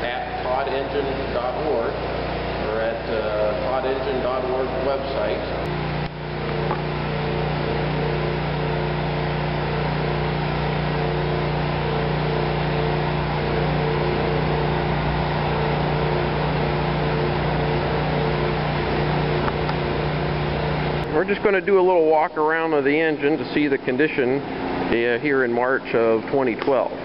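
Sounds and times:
generator engine hum: 0.0s - 27.0s.

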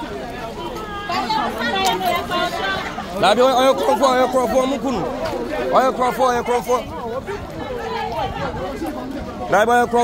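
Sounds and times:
men talking over one another: 0.0s - 10.0s.

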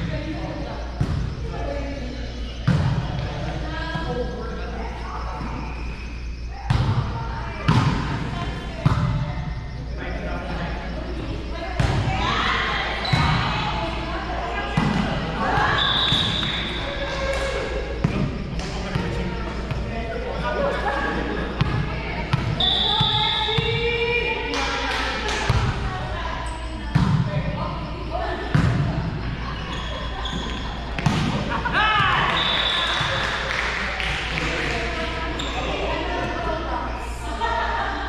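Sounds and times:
players calling and talking: 0.0s - 38.0s.

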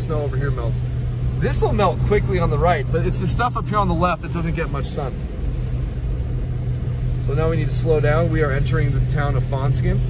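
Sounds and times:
car engine and tyre drone: 0.0s - 10.0s.

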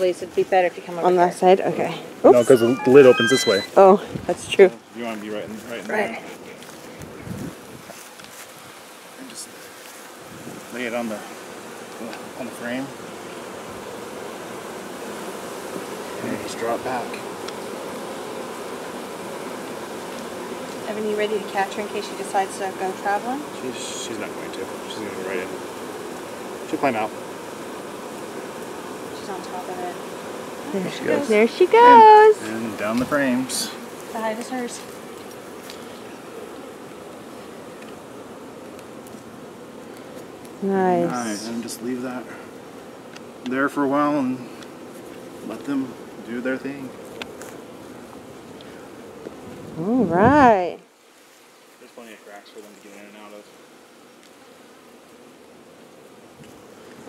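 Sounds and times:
honeybees humming: 0.0s - 57.0s.

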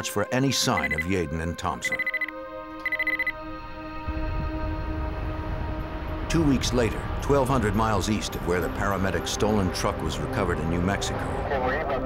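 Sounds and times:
music drone: 0.7s - 12.0s
high electronic beeping: 0.8s - 1.1s, 1.8s - 3.4s
road noise rumble: 3.5s - 12.0s.

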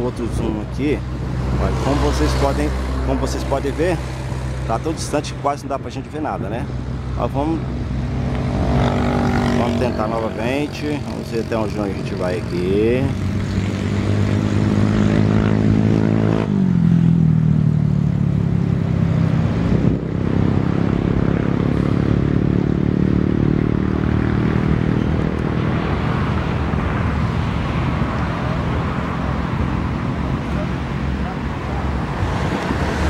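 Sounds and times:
broad rushing noise: 0.0s - 16.6s, 19.2s - 33.0s
engine droning hum passing by: 0.0s - 33.0s.

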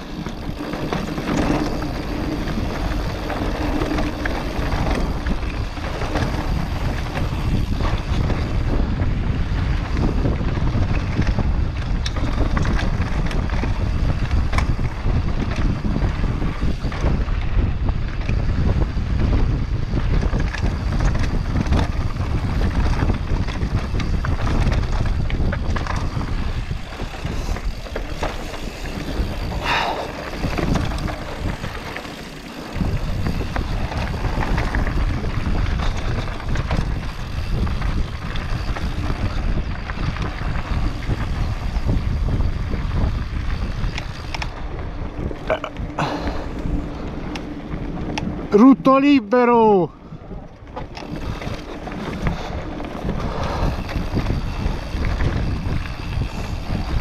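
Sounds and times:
mountain bike rumble and rattle: 0.0s - 57.0s
wind on microphone: 0.0s - 57.0s.

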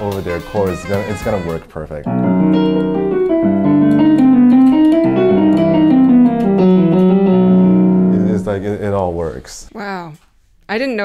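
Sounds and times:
electronic keyboard piano playing: 0.0s - 9.0s.

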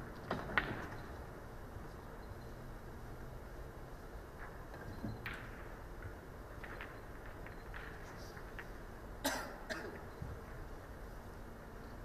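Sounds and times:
low hum of hall noise: 0.0s - 12.0s
person coughing: 9.2s - 10.0s
throat clearing: 9.2s - 10.0s.

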